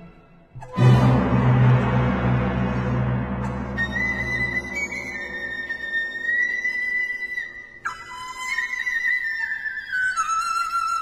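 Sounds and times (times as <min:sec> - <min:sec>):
bamboo flute note: 0:00.6 - 0:08.4.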